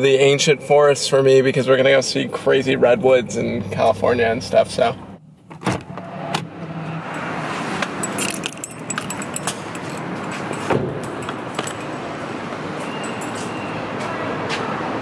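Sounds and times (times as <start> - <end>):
city traffic noise: 0.0 - 15.0
keys jangling: 7.9 - 12.1, 12.9 - 13.5.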